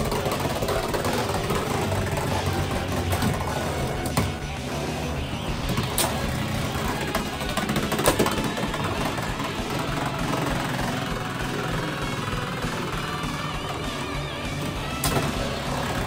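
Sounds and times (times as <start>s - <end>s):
spinning tops whirring: 0.0s - 16.0s.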